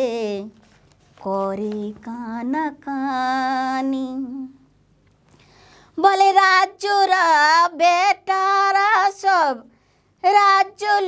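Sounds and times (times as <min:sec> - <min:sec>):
woman singing: 0:00.0 - 0:00.6, 0:01.2 - 0:04.6, 0:06.0 - 0:11.0
intake of breath: 0:05.3 - 0:06.0.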